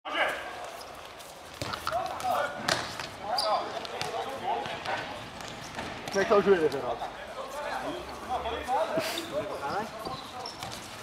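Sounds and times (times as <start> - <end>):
ball kicked and bouncing: 1.6 - 3.2, 3.8 - 6.3.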